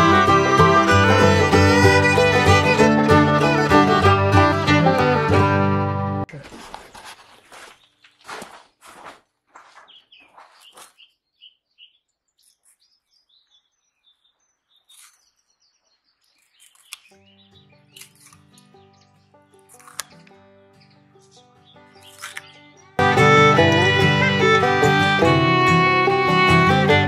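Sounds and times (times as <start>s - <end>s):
instrumental music: 0.0s - 6.3s, 17.1s - 27.0s
faint bird chirps: 9.8s - 18.2s.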